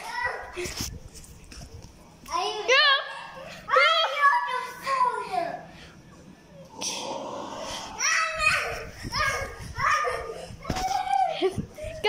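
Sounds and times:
children shrieking and shouting: 2.5s - 5.6s, 7.8s - 12.0s.

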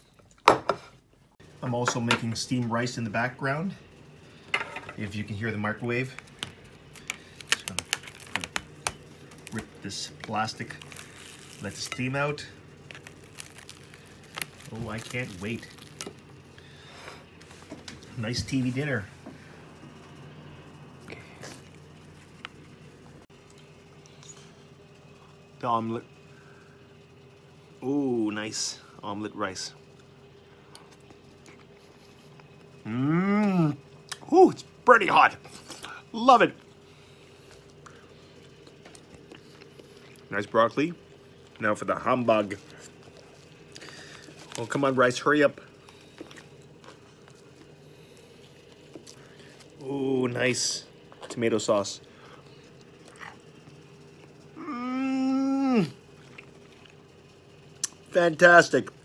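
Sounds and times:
microwave oven humming: 0.0s - 59.0s.

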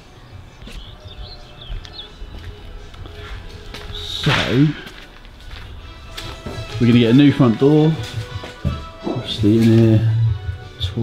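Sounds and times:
songbird chirping: 0.0s - 5.8s.

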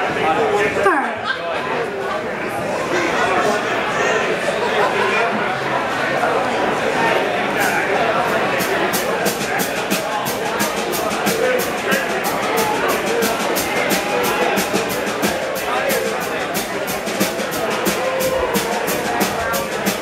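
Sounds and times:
drum kit: 7.6s - 20.0s
steady cymbal beat: 7.6s - 20.0s.

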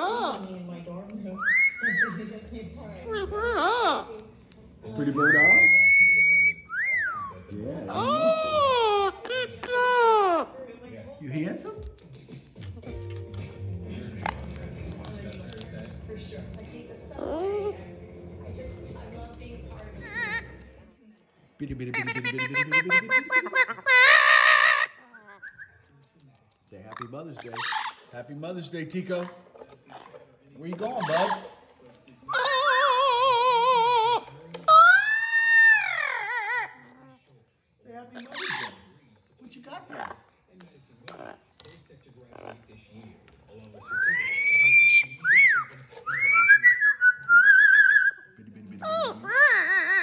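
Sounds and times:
parrot wavering call: 32.3s - 36.8s, 43.9s - 48.2s.

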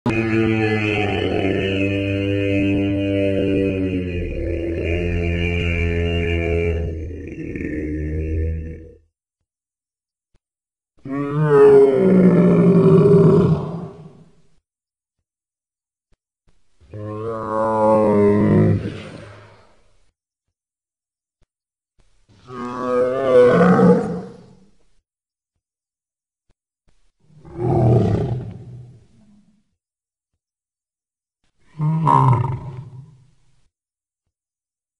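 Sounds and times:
low bellowing dinosaur roar: 0.1s - 9.0s, 11.0s - 14.3s, 16.9s - 19.7s, 22.4s - 24.5s, 27.4s - 29.4s, 31.7s - 33.2s.

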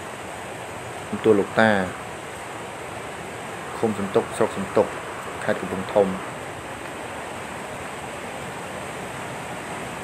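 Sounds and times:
water rushing from sluice gate: 0.0s - 10.0s.

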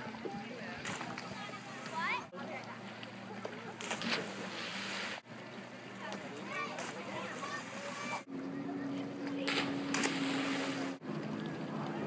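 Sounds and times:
faint voices: 0.0s - 4.5s, 5.4s - 12.0s
boat motor humming: 0.0s - 12.0s.

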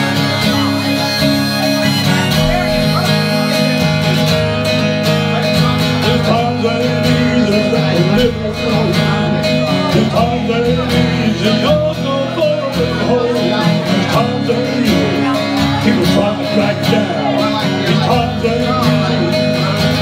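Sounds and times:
wavering lead melody: 0.0s - 5.1s
acoustic guitar strumming: 0.0s - 20.0s.

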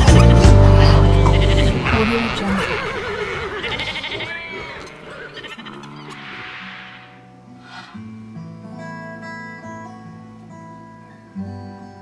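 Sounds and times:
animal bleating: 0.4s - 6.6s
farm animal calls: 0.4s - 8.0s.

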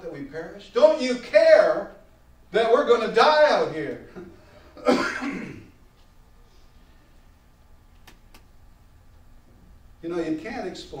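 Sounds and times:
man coughing: 4.8s - 5.8s.

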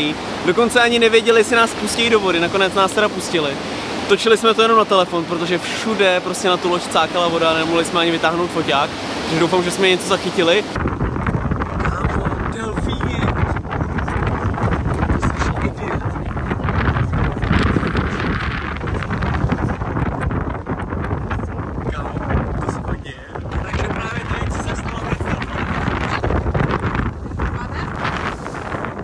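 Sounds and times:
water rushing along boat hull: 0.0s - 29.0s
wind buffeting microphone: 0.0s - 29.0s.

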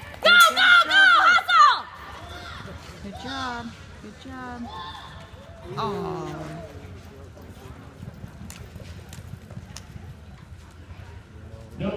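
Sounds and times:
horse hooves on dirt: 2.0s - 11.8s.

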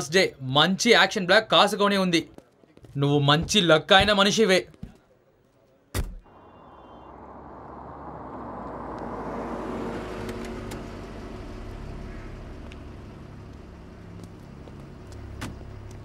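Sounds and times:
van engine idling: 6.3s - 16.0s.

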